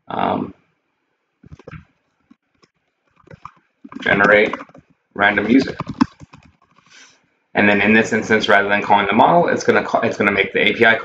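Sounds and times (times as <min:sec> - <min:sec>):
soft keyboard keystrokes: 0:05.4 - 0:06.8.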